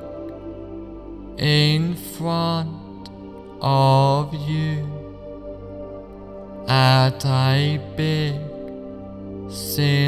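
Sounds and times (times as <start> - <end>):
chant-like vocal notes: 0.0 - 10.0
slow new-age music: 0.0 - 10.0.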